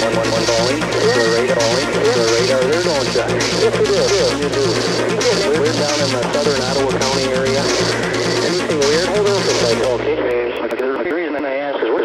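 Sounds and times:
electronic music with pulsing beat: 0.0 - 10.7
person speaking over radio: 0.0 - 12.0.

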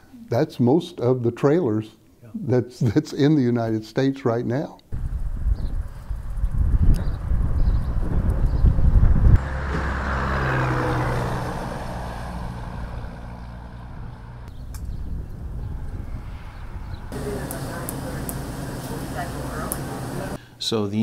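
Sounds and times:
heavy low rumble: 4.9 - 10.0, 11.8 - 20.4
vehicle passing: 8.9 - 20.4.

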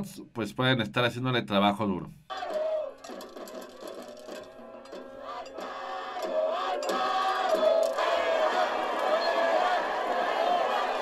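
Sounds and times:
crowd chanting a cheer: 2.3 - 11.0.

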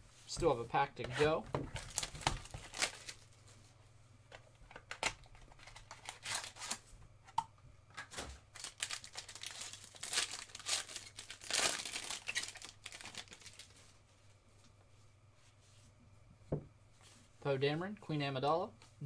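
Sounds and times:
foil wrapper crinkling and tearing: 1.8 - 3.2, 5.1 - 6.8, 8.5 - 13.9.

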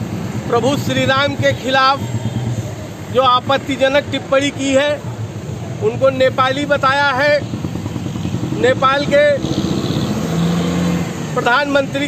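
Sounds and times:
street traffic engines rumbling: 0.0 - 12.0.

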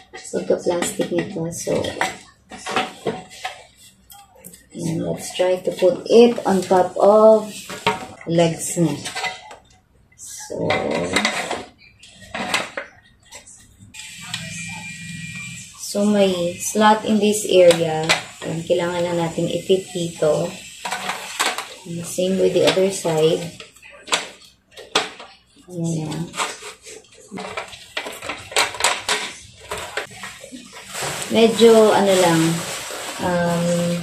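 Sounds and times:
steady noise: 12.3 - 34.0.

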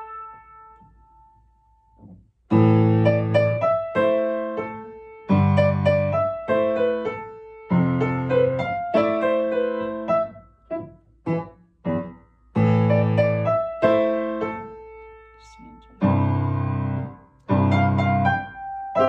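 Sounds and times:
piano playing: 0.0 - 1.4, 2.5 - 19.0.

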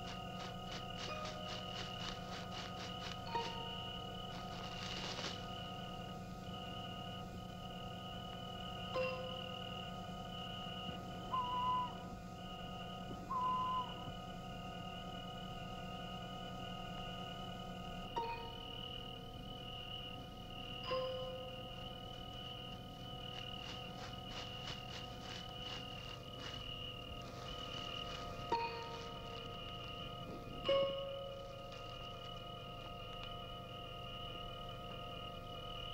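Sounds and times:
crickets chirring: 0.0 - 35.9
rapid ticking pulses: 0.0 - 35.9.

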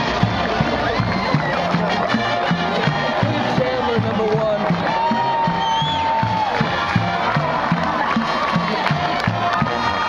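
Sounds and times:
music with drum beat: 0.0 - 10.0
stadium crowd cheering: 0.0 - 10.0.

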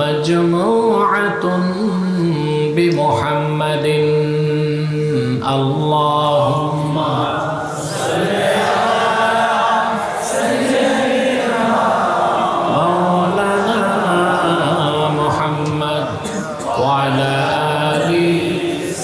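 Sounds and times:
man chanting into a microphone: 0.0 - 8.1, 12.7 - 19.0.

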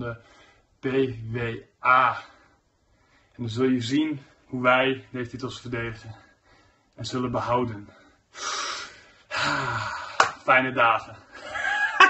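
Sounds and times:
man huffing breath: 8.4 - 10.2.

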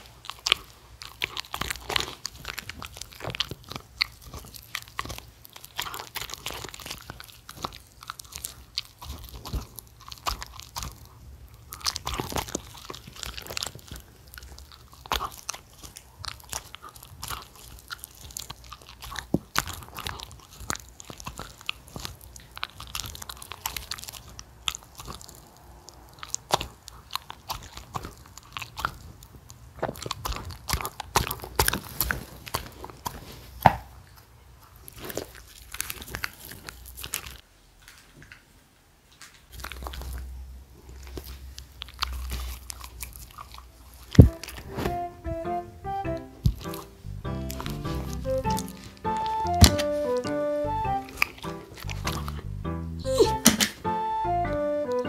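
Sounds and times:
dog chewing and crunching: 0.0 - 45.0, 46.2 - 53.9.

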